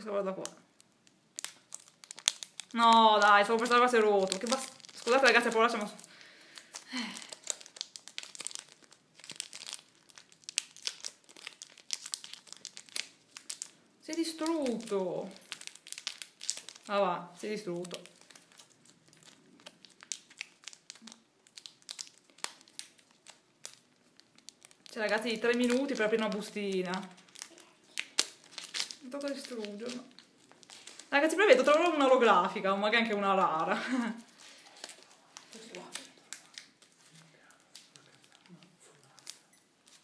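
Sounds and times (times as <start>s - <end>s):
foil wrapper crinkling: 0.0s - 40.0s.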